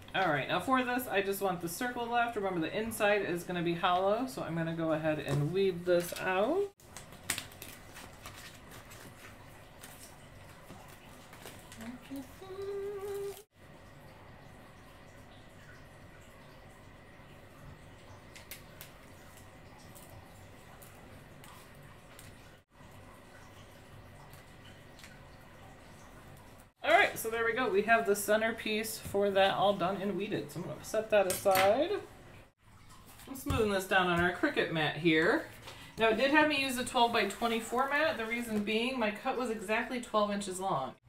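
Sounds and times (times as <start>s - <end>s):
vinyl peeling rustle and crackle: 5.9s - 13.5s, 18.3s - 22.6s, 35.2s - 38.8s.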